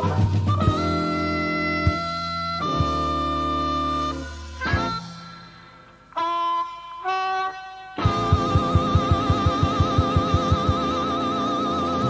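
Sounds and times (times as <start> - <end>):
blues harmonica held notes: 0.0 - 12.0.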